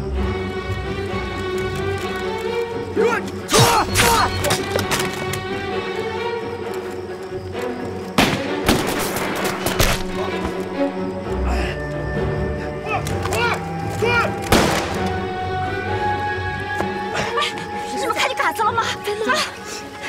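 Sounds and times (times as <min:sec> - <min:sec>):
tense orchestral strings: 0:00.0 - 0:20.0
gunshots: 0:14.5 - 0:15.1.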